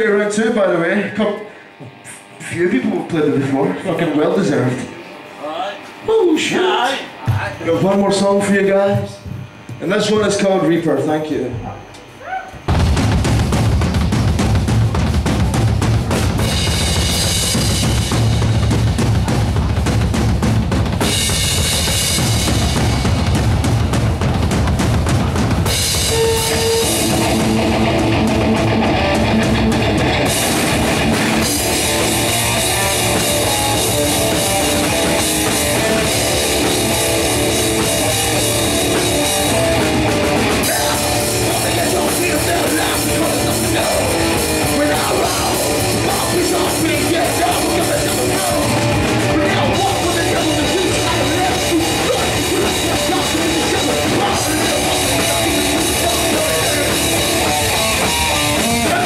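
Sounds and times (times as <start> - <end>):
heavy metal band playing: 12.6 - 59.0.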